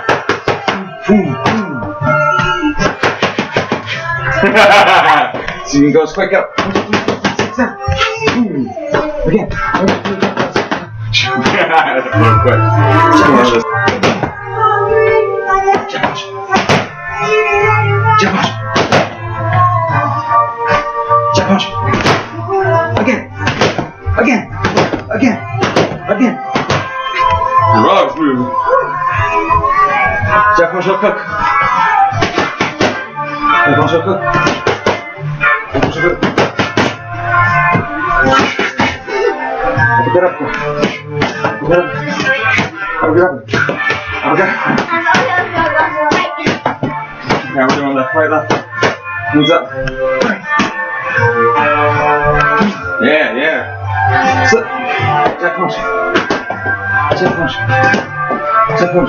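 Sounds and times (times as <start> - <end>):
background music with bass: 0.0 - 59.0
song with vocals: 0.0 - 59.0
boxing gloves slapping focus mitts: 2.4 - 3.8, 18.2 - 19.2, 23.4 - 24.0, 24.6 - 27.0, 32.2 - 33.0, 35.8 - 37.0, 56.1 - 58.1
boxing gloves smacking mitts: 24.6 - 26.9, 32.2 - 33.0, 35.8 - 37.0.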